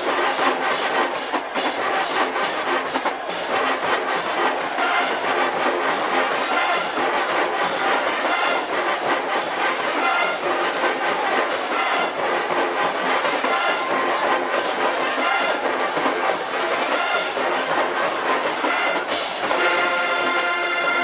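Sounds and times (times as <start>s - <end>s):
busy drum rhythm: 0.0s - 21.0s
marching band playing: 0.0s - 21.0s.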